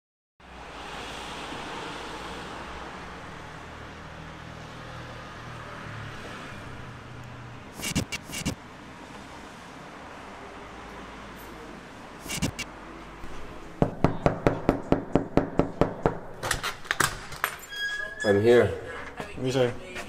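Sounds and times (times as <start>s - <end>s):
traffic noise: 0.4s - 20.0s.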